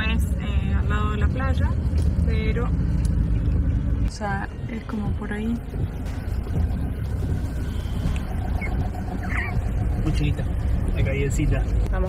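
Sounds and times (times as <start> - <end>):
road and engine rumble in vehicle: 0.0 - 12.0.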